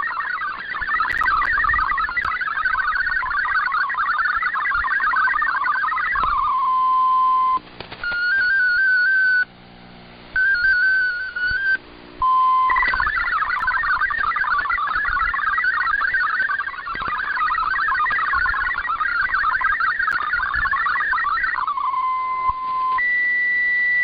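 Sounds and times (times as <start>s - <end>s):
tone hopping up and down in pitch: 0.0s - 9.5s, 10.4s - 23.0s
warbling digital data tones: 0.0s - 9.5s, 10.4s - 24.0s.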